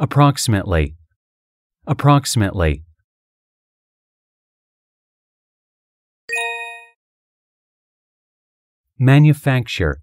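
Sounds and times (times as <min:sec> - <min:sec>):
bell-like ding: 0:06.3 - 0:07.0.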